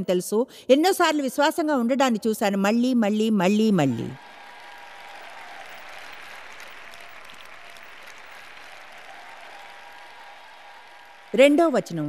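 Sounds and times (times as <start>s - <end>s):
large audience applauding: 3.9s - 12.0s.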